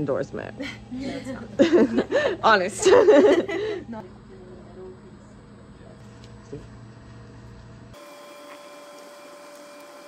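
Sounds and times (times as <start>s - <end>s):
electrical hum with high whine: 0.0s - 10.0s.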